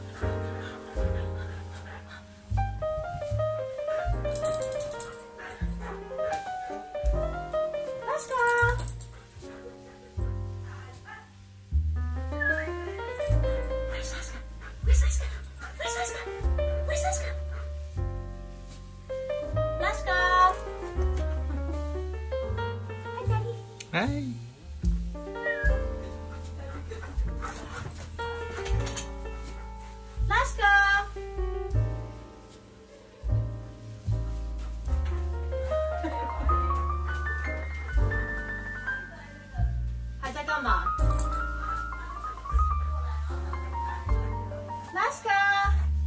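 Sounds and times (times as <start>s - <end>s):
piano music: 0.0s - 46.0s
dog whimpering: 25.4s - 27.9s.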